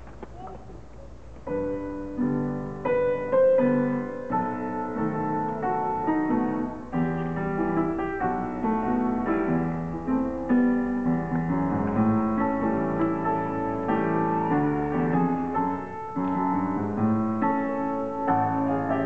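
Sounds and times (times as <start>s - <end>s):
jazz piano playing: 1.1s - 19.0s.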